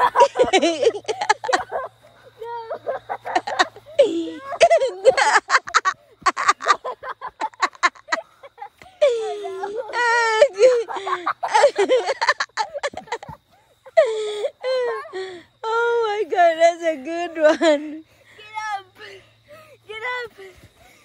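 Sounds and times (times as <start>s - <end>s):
person laughing hard: 0.0s - 1.9s, 2.6s - 15.3s.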